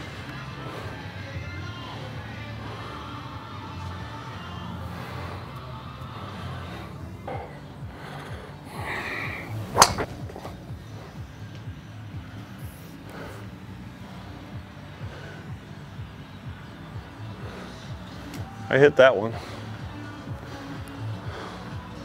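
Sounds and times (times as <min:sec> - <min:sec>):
golf club striking ball: 0:09.6 - 0:10.6.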